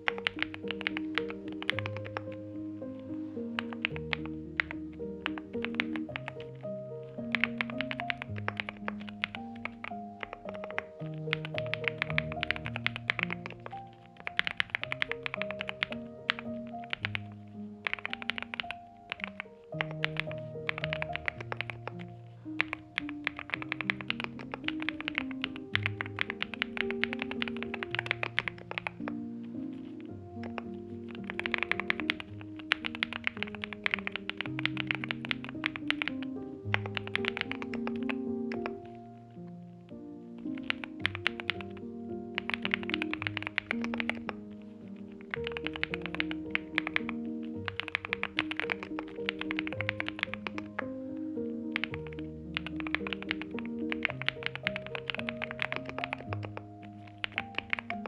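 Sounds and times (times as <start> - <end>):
mechanical keyboard typing: 0.0 - 2.4, 3.6 - 6.6, 7.2 - 29.2, 30.3 - 38.8, 40.5 - 44.4, 45.1 - 50.9, 51.7 - 58.0
background music: 0.0 - 58.0.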